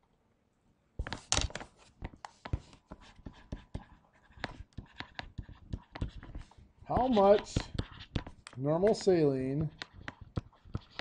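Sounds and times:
stylus tapping on screen: 2.0 - 11.0
stylus scratching: 2.3 - 11.0.

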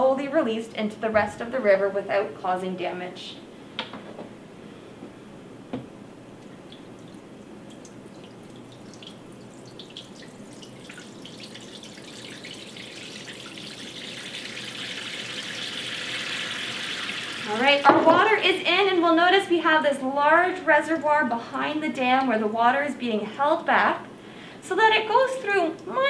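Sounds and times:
water dripping through holes: 6.4 - 18.4
water pouring from plastic jug: 7.0 - 17.6.

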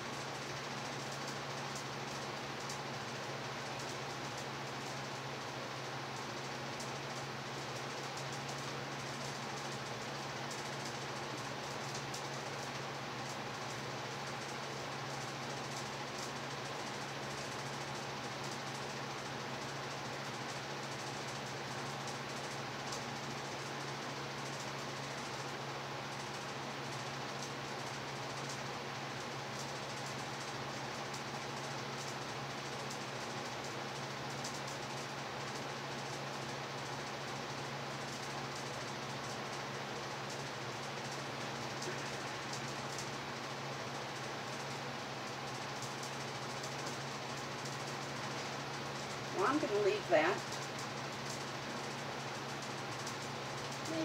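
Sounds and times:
fans and air conditioner whirring: 0.0 - 54.0.

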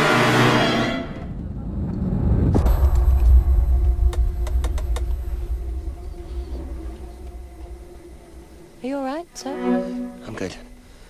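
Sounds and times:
deep rumble of airliner: 1.2 - 9.2.

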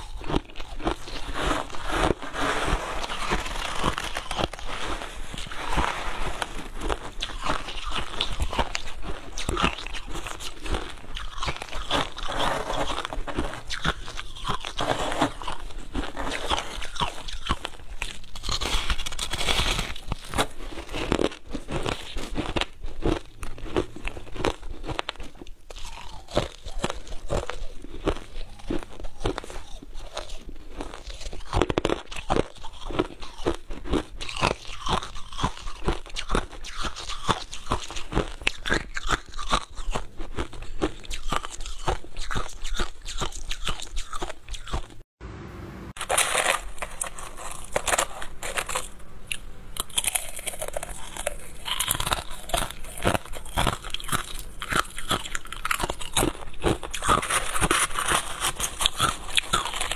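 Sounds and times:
chewing crushed ice: 0.0 - 45.0, 46.0 - 59.9.

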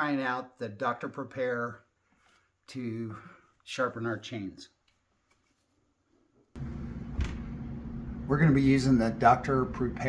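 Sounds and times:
low hum: 6.6 - 10.0.

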